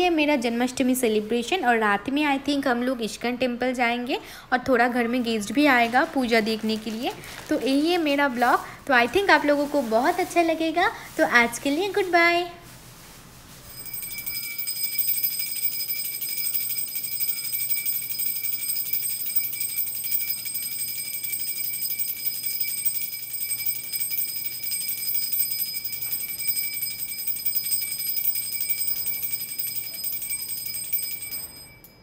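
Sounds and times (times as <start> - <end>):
brass hand bell ringing rapidly: 13.7 - 32.0.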